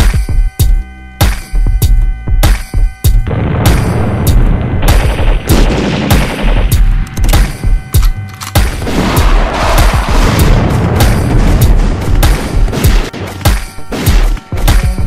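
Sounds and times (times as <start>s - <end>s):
hard-hitting percussive hits: 0.0s - 15.0s
heavy bass: 0.0s - 15.0s
hip-hop instrumental: 0.0s - 15.0s.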